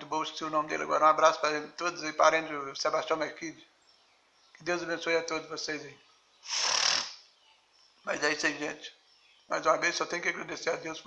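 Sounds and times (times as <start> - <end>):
breath close to microphone: 6.4 - 7.2.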